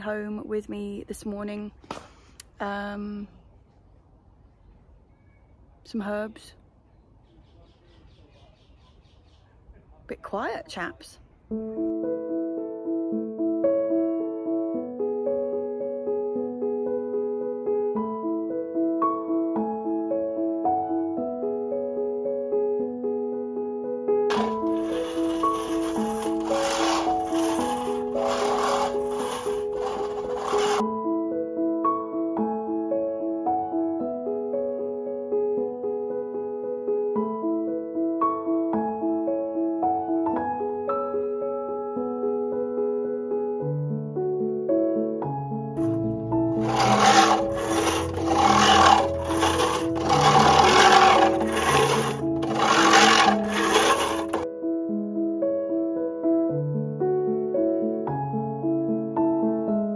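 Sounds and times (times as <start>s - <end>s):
soft piano music: 11.4s - 28.3s, 29.6s - 46.7s, 54.4s - 59.9s
cylinder lawn mower whirring: 24.3s - 30.8s, 45.8s - 54.4s.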